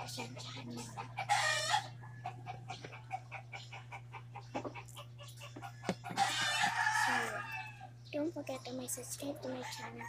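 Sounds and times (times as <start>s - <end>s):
rooster crowing: 1.3s - 2.4s, 5.6s - 7.9s.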